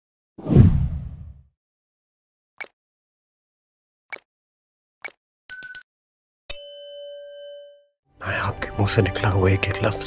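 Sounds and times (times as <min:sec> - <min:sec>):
whoosh with deep rumble: 0:00.4 - 0:01.4.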